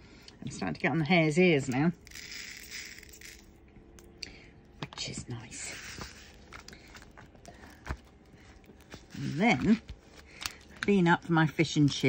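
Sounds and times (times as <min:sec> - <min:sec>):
beads rattling into plastic tray: 0:02.0 - 0:03.5.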